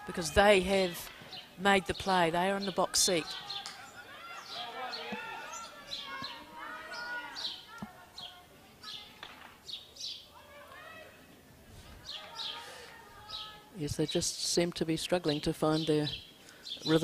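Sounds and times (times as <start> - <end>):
distant players shouting: 0.0 - 8.3.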